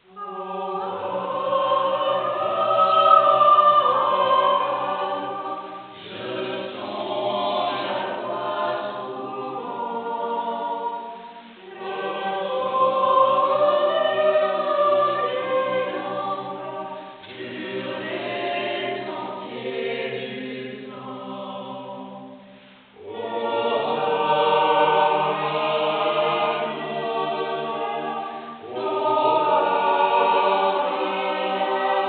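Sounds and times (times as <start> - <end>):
mixed choir singing unaccompanied: 0.0 - 32.0
singers breathing: 11.1 - 11.6, 16.9 - 17.4, 22.3 - 23.0, 28.2 - 28.6.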